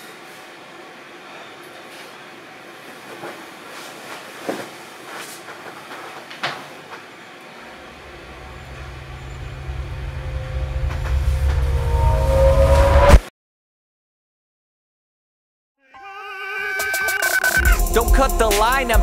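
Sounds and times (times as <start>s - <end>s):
deep rumble: 7.8s - 13.2s.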